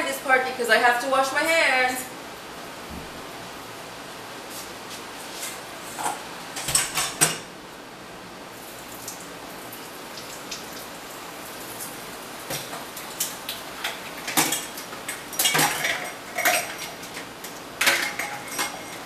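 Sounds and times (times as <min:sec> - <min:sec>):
dishes clinking and clattering: 0:13.8 - 0:19.0.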